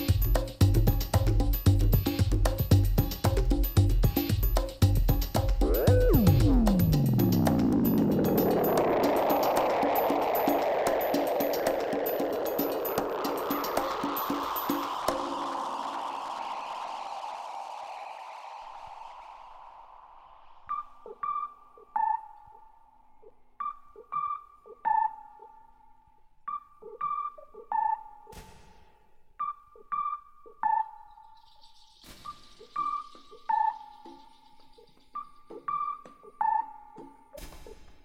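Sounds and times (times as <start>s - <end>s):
held synth tone: 5.6s - 22.6s
soft low blips: 5.6s - 23.0s
burst of noise: 5.7s - 21.0s
hiss: 8.4s - 20.8s.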